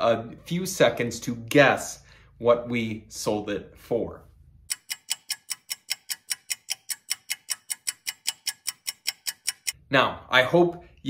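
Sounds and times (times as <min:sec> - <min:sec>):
fast clock ticking countdown: 0:04.7 - 0:09.8.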